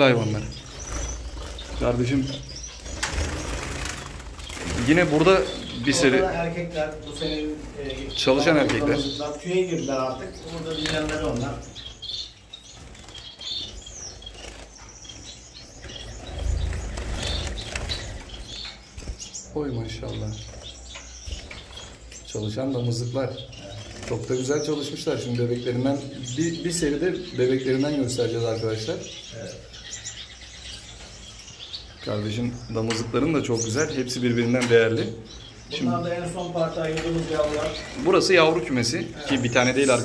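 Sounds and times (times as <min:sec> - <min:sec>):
finches chirping: 0:00.0 - 0:40.0
finches fluttering wings: 0:00.5 - 0:06.3, 0:10.4 - 0:19.4.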